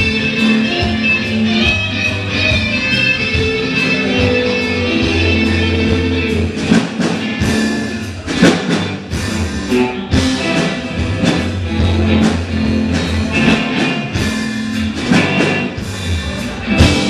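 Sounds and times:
live rock band playing: 0.0s - 17.0s
drum and cymbal hits: 4.2s - 17.0s.

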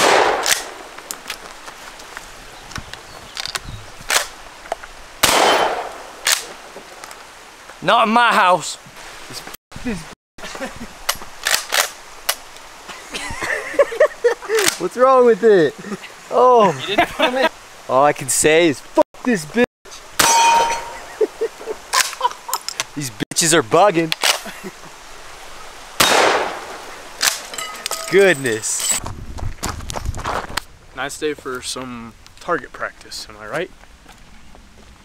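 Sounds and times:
gunshot with echo: 0.0s - 0.8s, 5.2s - 6.4s, 26.0s - 26.8s
shotgun cracks: 0.0s - 0.9s, 5.2s - 6.5s, 26.0s - 27.5s.

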